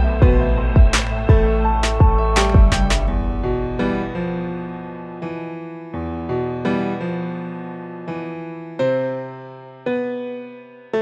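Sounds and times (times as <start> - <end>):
slow keyboard chords: 0.0 - 6.6.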